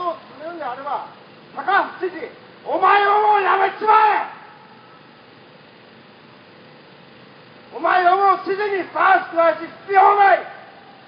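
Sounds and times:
man's loud drawn-out voice: 0:01.6 - 0:04.6, 0:07.7 - 0:10.8.

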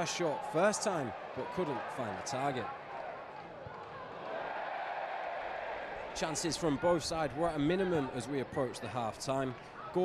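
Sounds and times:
stadium crowd murmur: 0:00.0 - 0:10.0.

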